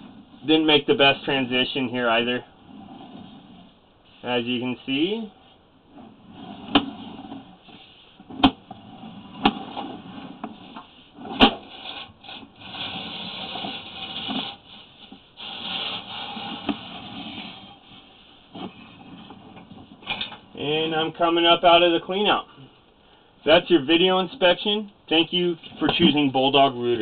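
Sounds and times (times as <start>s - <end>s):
cable scraping in drain pipe: 2.7s - 3.7s, 6.0s - 20.3s.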